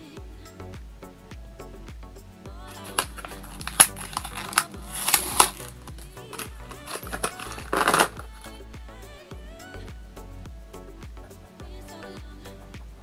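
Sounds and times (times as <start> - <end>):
background music: 0.0 - 13.0
pens clicking on table: 2.7 - 8.3
plastic packaging rustling: 2.7 - 8.4.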